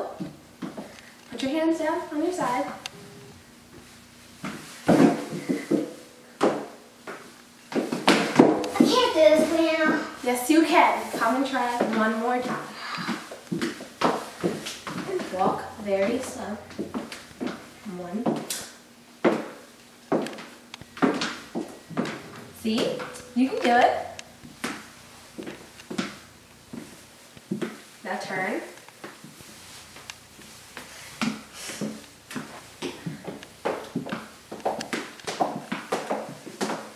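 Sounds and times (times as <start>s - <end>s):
shoes tapping on hardwood floor: 0.2s - 1.0s, 3.7s - 10.1s, 11.0s - 18.6s, 19.2s - 27.9s, 28.8s - 36.9s
child's voice: 8.7s - 10.2s
girls talking: 8.7s - 12.6s, 15.1s - 16.7s.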